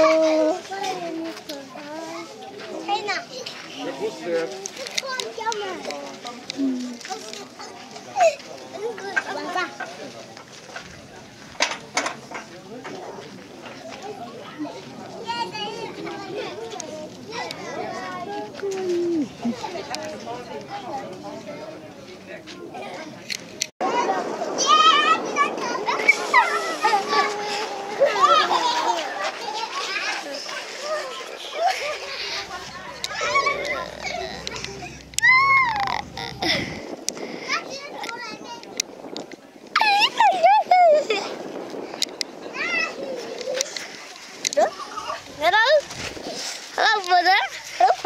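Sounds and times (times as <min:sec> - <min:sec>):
children chattering and calling out: 0:00.0 - 0:48.0.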